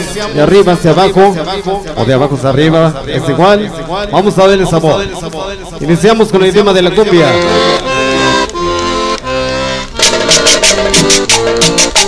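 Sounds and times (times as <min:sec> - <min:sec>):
accordion chords: 0:05.7 - 0:12.0
steady percussion beat: 0:08.7 - 0:12.0.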